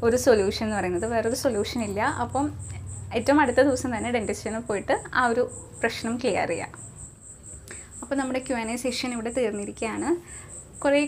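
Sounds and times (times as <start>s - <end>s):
woman speaking: 0.0s - 6.8s, 8.0s - 11.0s
cricket chirping: 0.0s - 11.0s.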